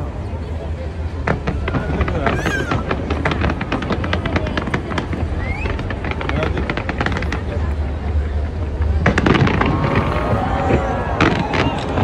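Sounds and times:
fireworks crackling and banging: 0:00.0 - 0:12.0.

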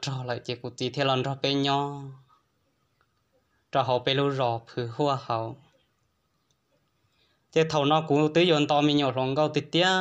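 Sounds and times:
man telling a story: 0:00.0 - 0:02.3, 0:03.7 - 0:05.8, 0:07.5 - 0:10.0.

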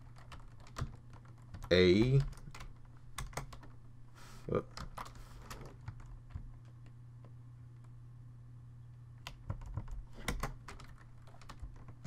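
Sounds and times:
computer keyboard typing: 0:00.0 - 0:03.8, 0:04.7 - 0:06.8, 0:09.2 - 0:12.0
steady low hum: 0:00.0 - 0:12.0.

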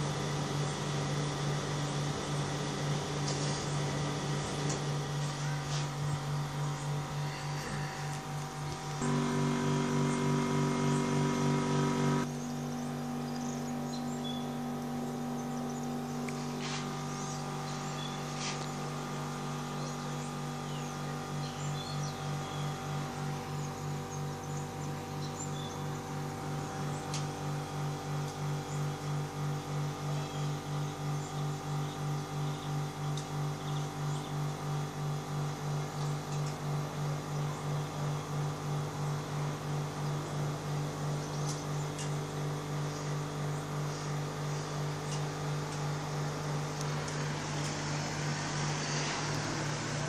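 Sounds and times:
low throbbing hum: 0:00.0 - 0:50.0.

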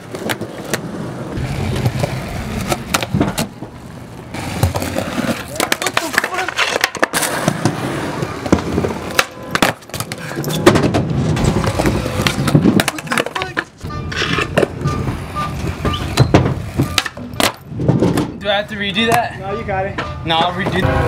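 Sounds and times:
skateboard deck clacking: 0:00.0 - 0:18.3
skateboard wheels rolling on concrete: 0:00.0 - 0:21.0.

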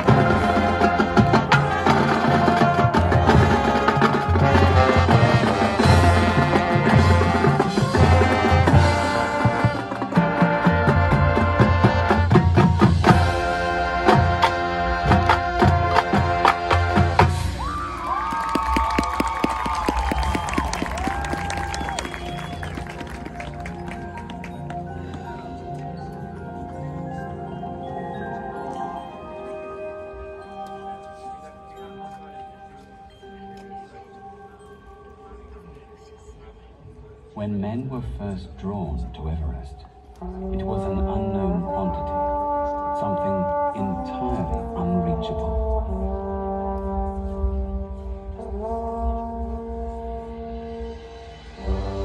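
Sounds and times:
marching band playing: 0:00.0 - 0:26.1, 0:40.2 - 0:52.0
light percussion ticks: 0:30.6 - 0:31.2.

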